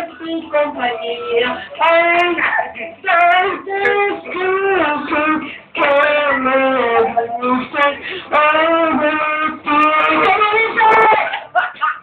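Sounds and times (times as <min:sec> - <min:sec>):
young man singing high: 0:00.0 - 0:11.3.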